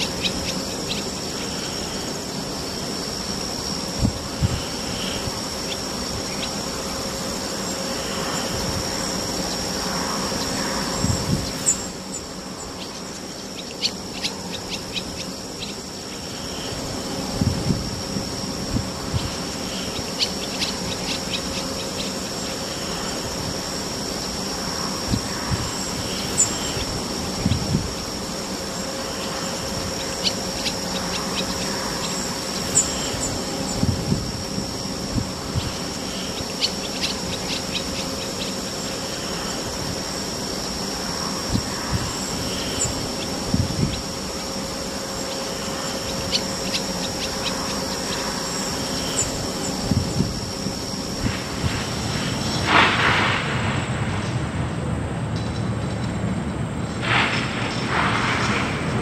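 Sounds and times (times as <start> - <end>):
high-pitched insect-like droning: 0.0 - 59.0.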